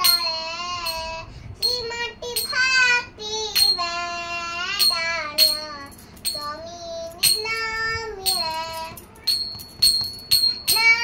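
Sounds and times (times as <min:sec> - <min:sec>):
girl singing a chant: 0:00.0 - 0:09.5, 0:10.6 - 0:11.0
hand cymbals struck: 0:00.0 - 0:11.0.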